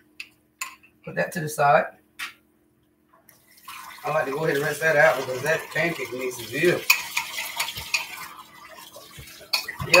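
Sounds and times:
dishes clinking in sink: 0:05.7 - 0:10.0.

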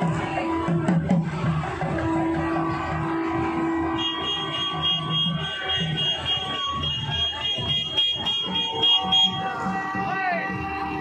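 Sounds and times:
crowd noise: 0:00.0 - 0:11.0
drums beating: 0:00.0 - 0:11.0.

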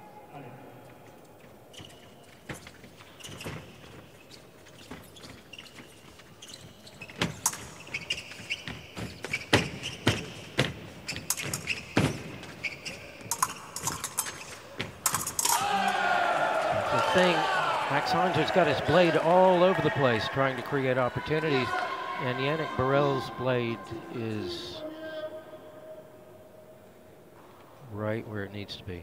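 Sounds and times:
shoe squeaks: 0:01.3 - 0:15.6
person speaking: 0:16.9 - 0:25.3.

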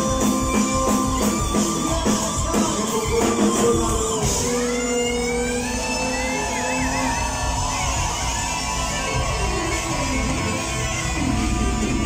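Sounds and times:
guitar lead line: 0:00.0 - 0:12.0
live band music: 0:00.0 - 0:12.0.

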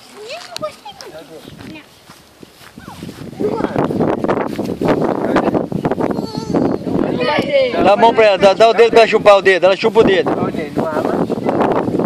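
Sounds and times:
footsteps through long grass: 0:00.0 - 0:06.1.

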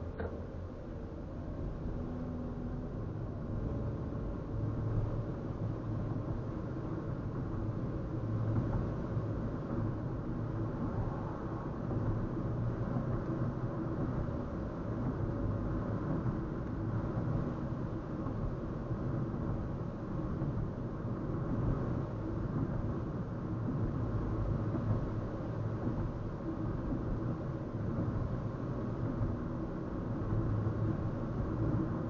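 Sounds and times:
car cabin road and engine drone: 0:00.0 - 0:32.0.

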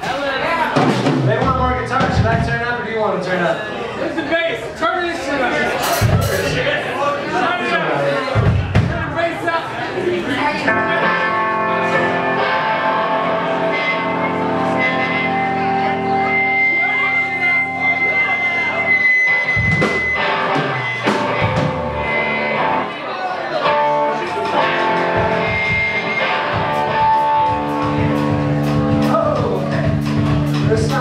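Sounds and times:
bass guitar: 0:00.7 - 0:02.7, 0:10.7 - 0:23.0, 0:23.6 - 0:31.0
drum hits: 0:00.7 - 0:02.7, 0:05.8 - 0:06.6, 0:08.4 - 0:09.2, 0:19.6 - 0:22.1, 0:24.4 - 0:31.0
electric guitar: 0:10.7 - 0:31.0.

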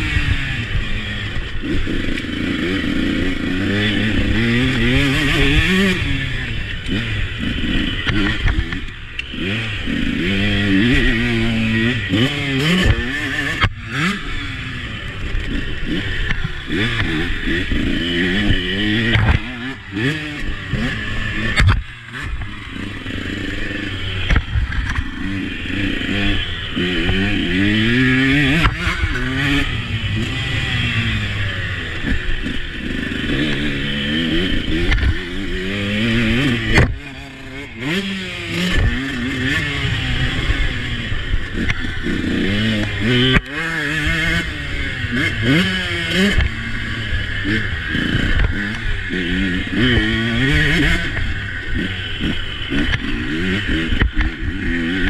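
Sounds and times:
motocross bike engine revving: 0:00.0 - 0:55.0
steady rushing noise: 0:00.0 - 0:55.0.

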